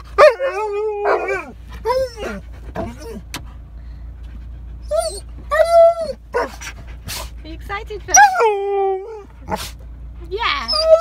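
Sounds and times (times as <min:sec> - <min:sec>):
dog whining and yelping: 0:00.0 - 0:03.3, 0:04.6 - 0:07.3, 0:08.1 - 0:11.0.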